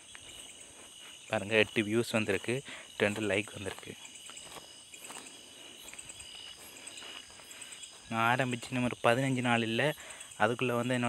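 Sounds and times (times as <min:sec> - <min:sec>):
crickets chirping: 0:00.0 - 0:11.0
man speaking: 0:01.3 - 0:04.0, 0:08.1 - 0:11.0.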